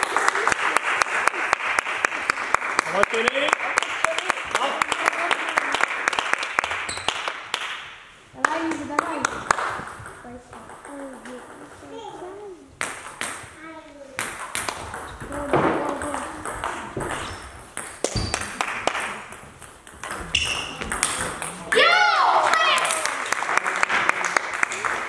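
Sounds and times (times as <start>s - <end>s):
player shouting: 21.8s - 23.2s.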